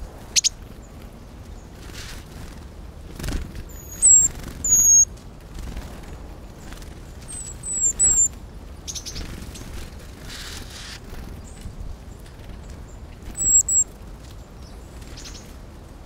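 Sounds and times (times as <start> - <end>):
bird call notes: 3.8 - 5.1, 13.4 - 13.8.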